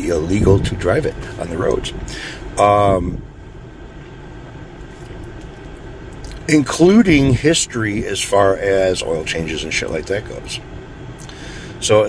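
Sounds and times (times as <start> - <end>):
low hum inside car cabin: 0.0 - 12.0.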